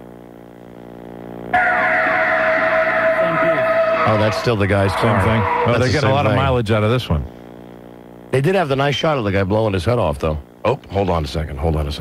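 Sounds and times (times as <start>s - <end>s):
faint steady hum: 0.0s - 12.0s
loud steady tone over noise: 0.0s - 12.0s.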